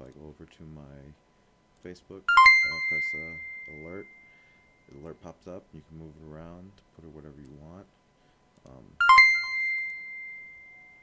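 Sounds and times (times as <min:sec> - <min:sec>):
electronic notification chime: 0:02.3 - 0:04.3, 0:09.0 - 0:11.0.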